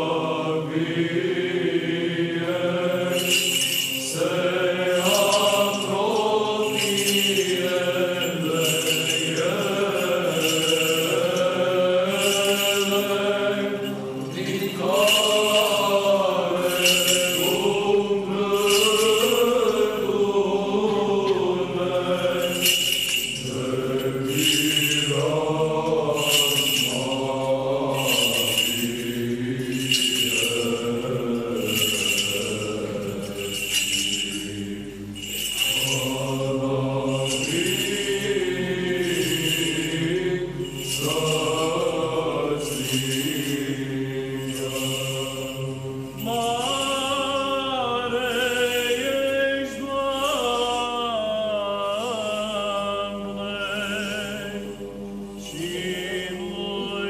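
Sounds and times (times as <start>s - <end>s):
choir singing liturgical chant: 0.0s - 57.0s
small bells jingling: 0.0s - 57.0s.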